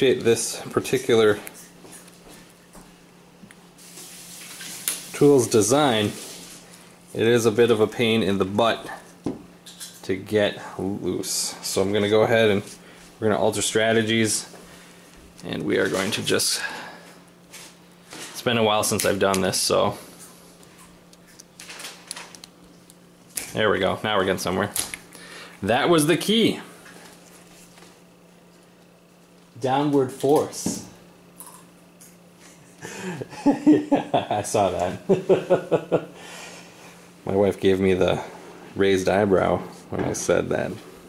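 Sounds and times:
low steady hum: 0:00.0 - 0:41.0
faint running water: 0:03.8 - 0:06.6.

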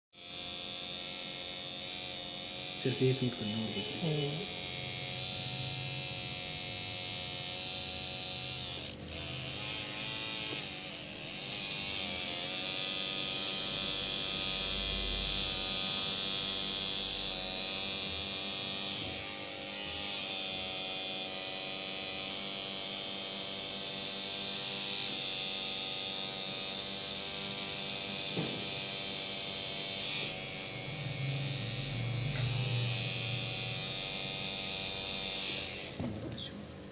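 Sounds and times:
tattoo machine buzzing: 0:00.2 - 0:36.1.

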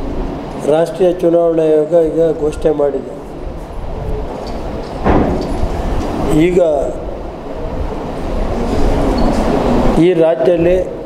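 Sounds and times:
steady low rumbling: 0:00.0 - 0:11.0.

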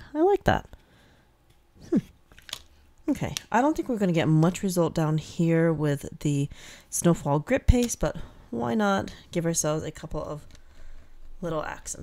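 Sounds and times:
woman humming hmm: 0:01.8 - 0:02.2.

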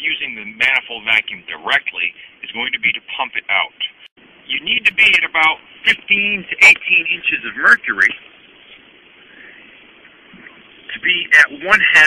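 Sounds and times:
car cabin noise: 0:03.5 - 0:12.0.

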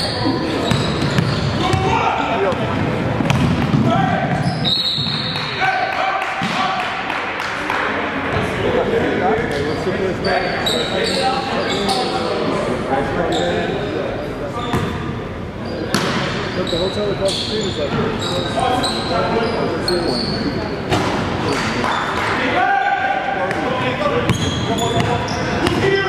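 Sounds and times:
shoe squeaks: 0:00.0 - 0:01.7, 0:04.4 - 0:05.5, 0:09.7 - 0:12.3, 0:13.3 - 0:13.9, 0:15.6 - 0:20.6, 0:24.3 - 0:26.0.

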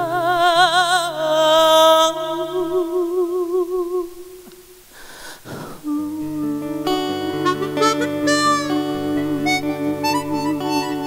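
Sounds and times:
acoustic guitar: 0:00.0 - 0:04.6, 0:05.4 - 0:11.0
chromatic harmonica: 0:05.6 - 0:11.0
sustained vocal note with vibrato: 0:05.9 - 0:11.0.

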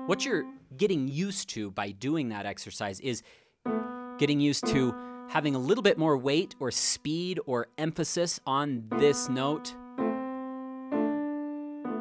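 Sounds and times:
grand piano chords: 0:00.0 - 0:00.6, 0:03.7 - 0:06.8, 0:08.9 - 0:12.0.

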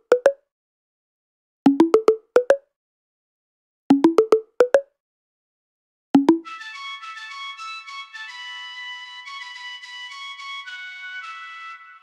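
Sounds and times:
plucky synth notes: 0:01.7 - 0:02.6, 0:03.9 - 0:04.8, 0:06.2 - 0:06.5
synth flute melody: 0:06.2 - 0:12.0.

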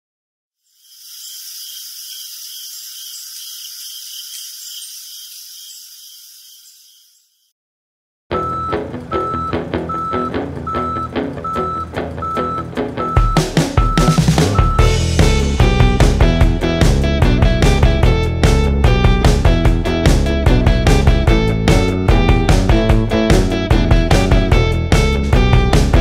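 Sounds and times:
hissing with fast ticking: 0:00.7 - 0:06.6
truck reversing alarm beeps: 0:08.4 - 0:15.0
drum-heavy music: 0:13.2 - 0:26.0.

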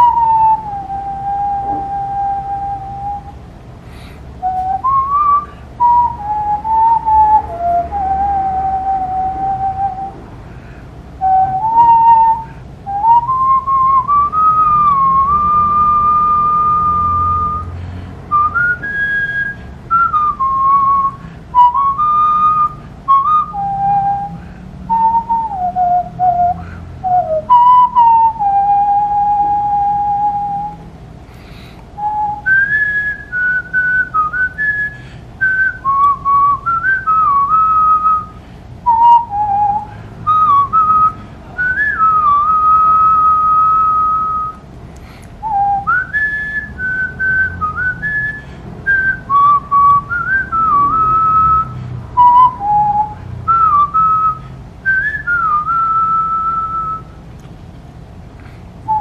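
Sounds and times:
man whistling a melody: 0:00.0 - 0:03.4, 0:04.0 - 0:10.2, 0:11.2 - 0:30.9, 0:31.7 - 0:44.7, 0:45.4 - 0:57.2, 0:58.8 - 0:59.0.

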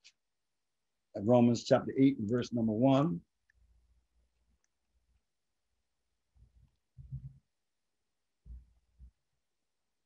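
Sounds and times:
man speaking: 0:01.2 - 0:03.3.

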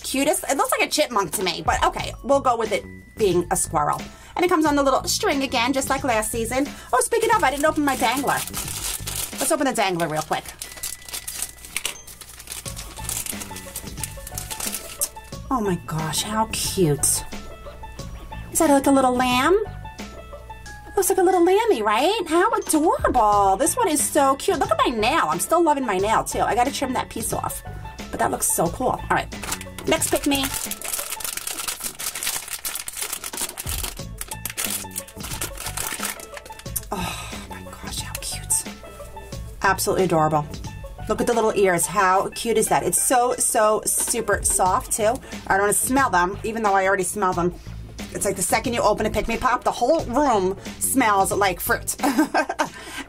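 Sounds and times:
background music: 0:00.0 - 0:53.0
plastic foil bag crinkling: 0:06.9 - 0:15.4, 0:29.4 - 0:36.9.

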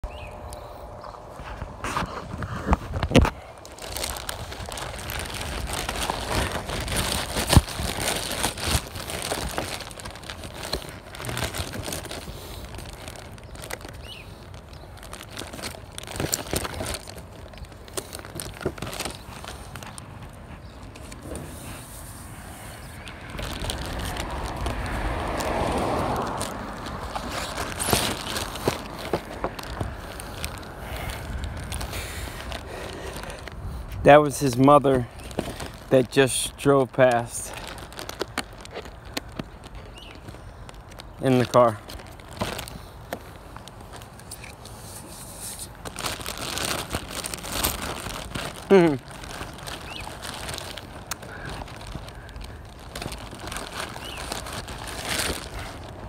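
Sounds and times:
plastic crinkling: 0:01.4 - 0:56.0
car driving past: 0:24.2 - 0:27.0.

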